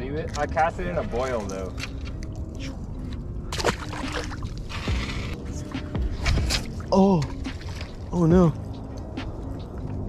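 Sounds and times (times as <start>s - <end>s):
wind: 0.0s - 10.0s
water noise around a boat: 0.2s - 10.0s.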